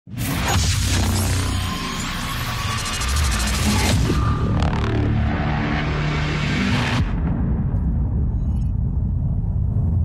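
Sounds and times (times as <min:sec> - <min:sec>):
electronic music with heavy bass: 0:00.1 - 0:07.2.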